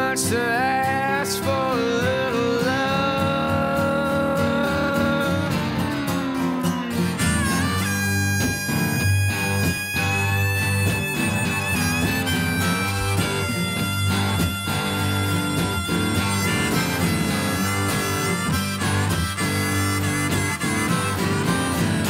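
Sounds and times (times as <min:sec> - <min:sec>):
electric guitar lead notes: 0:00.0 - 0:22.0
harmonica: 0:00.0 - 0:22.0
strummed acoustic guitar: 0:00.0 - 0:22.0.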